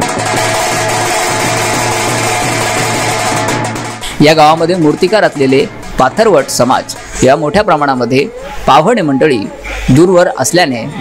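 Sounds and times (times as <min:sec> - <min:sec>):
marching drums beating: 0:00.0 - 0:08.1.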